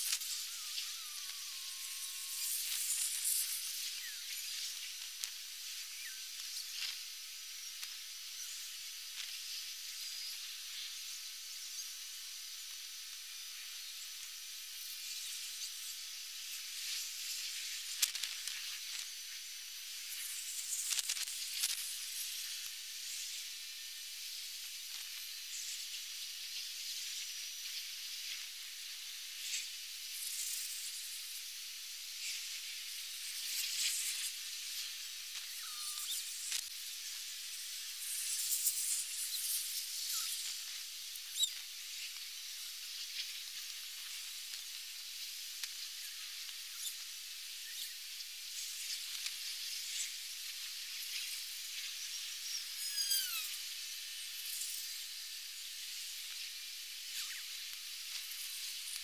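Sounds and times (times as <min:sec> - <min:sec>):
soap foam fizzing and crackling: 0:00.0 - 0:59.0.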